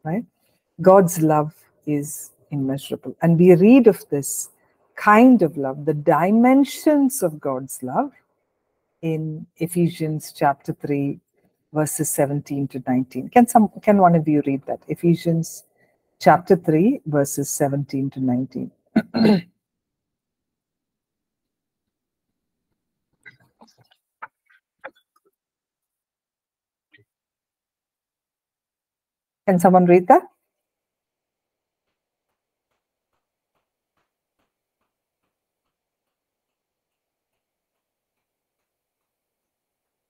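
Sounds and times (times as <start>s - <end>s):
woman clearing her throat: 19.0s - 19.6s.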